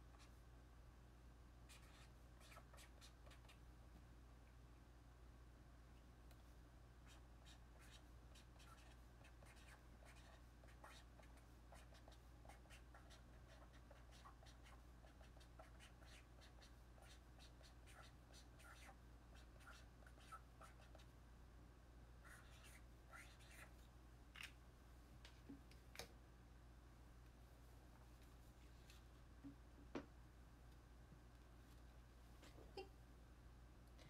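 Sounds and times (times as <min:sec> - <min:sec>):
pen scratching on paper: 0:01.7 - 0:03.5, 0:07.1 - 0:21.0, 0:22.2 - 0:23.7.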